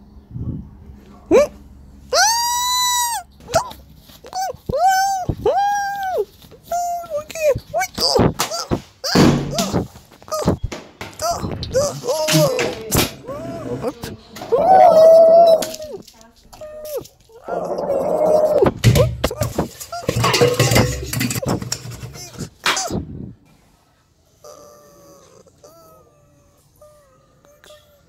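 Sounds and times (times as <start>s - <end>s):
high-pitched wailing and whimpers: 1.3s - 10.6s, 11.2s - 23.0s, 24.4s - 28.0s
sharp thunks: 8.0s - 11.8s.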